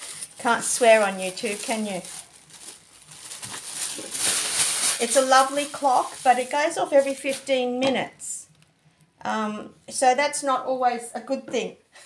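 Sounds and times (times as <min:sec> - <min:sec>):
tissue paper rustling: 0:00.0 - 0:07.6.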